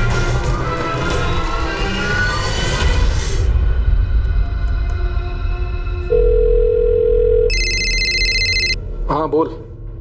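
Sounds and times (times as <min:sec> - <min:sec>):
high electronic ring: 0:06.1 - 0:08.8
telephone dial tone: 0:06.1 - 0:08.8.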